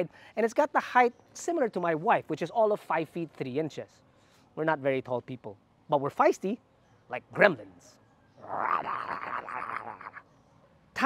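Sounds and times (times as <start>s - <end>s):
raspy hissing growl: 8.4s - 10.2s.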